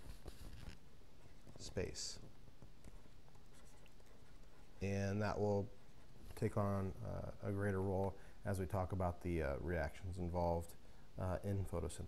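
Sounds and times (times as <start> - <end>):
stylus scratching on pen tablet: 0.0 - 1.7, 2.9 - 6.6.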